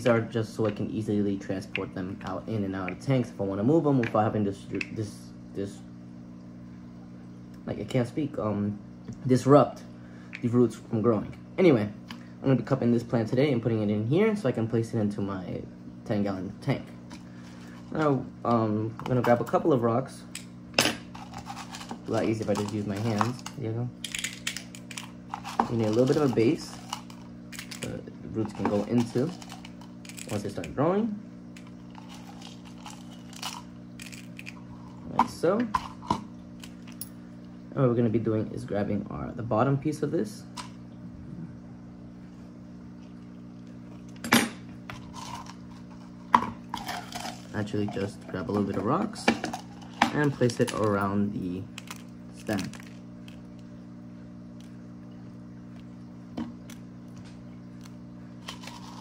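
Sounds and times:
steady low hum: 0:00.0 - 0:59.0
gravel stones dropped into plastic cup: 0:31.6 - 0:37.0, 0:51.8 - 0:53.6.

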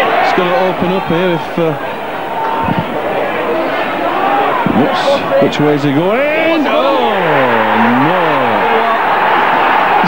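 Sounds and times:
stadium crowd roaring: 0:00.0 - 0:10.0.

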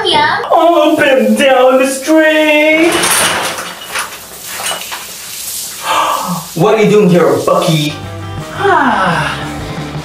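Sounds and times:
steady hiss: 0:00.5 - 0:08.0.

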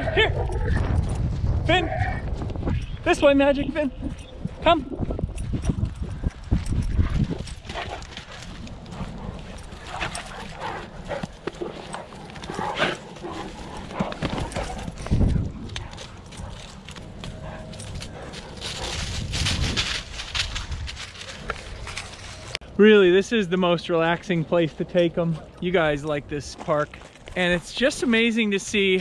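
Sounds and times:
dogs scuffling: 0:05.9 - 0:22.6
dogs grunting and breathing: 0:06.7 - 0:19.3.

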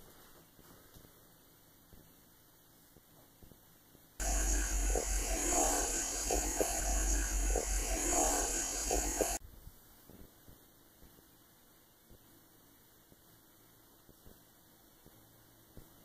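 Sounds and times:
recorder hiss and low hum: 0:00.0 - 0:16.0.

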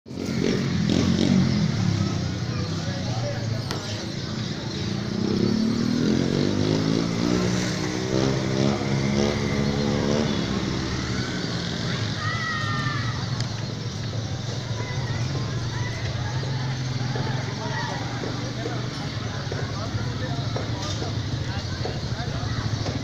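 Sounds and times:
motorcycle engine revving: 0:00.1 - 0:23.0
people's voices: 0:00.1 - 0:23.0.

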